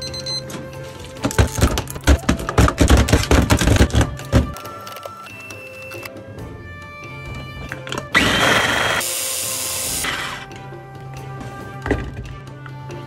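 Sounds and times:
electric food chopper motor: 8.1 - 10.5.

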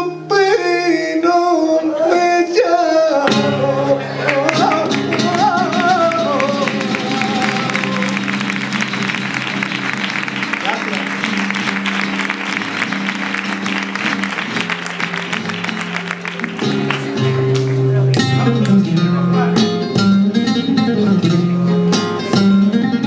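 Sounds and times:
flamenco guitar playing: 0.0 - 23.0
applause: 4.2 - 18.8.

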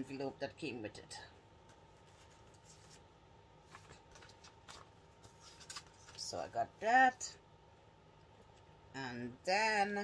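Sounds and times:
paper envelope rustling: 2.0 - 6.4.

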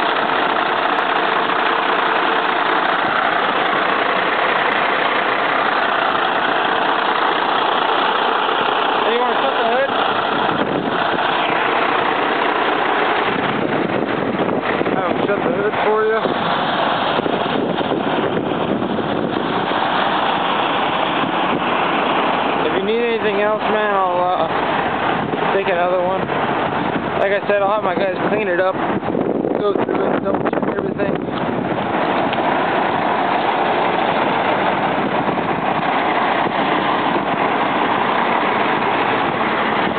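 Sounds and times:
diesel engine idling: 0.0 - 39.9.

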